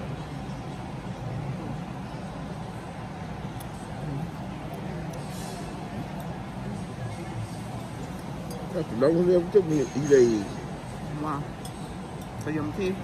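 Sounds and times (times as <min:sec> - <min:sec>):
murmur of distant voices: 0:00.0 - 0:13.0
steady low hum: 0:00.0 - 0:13.0.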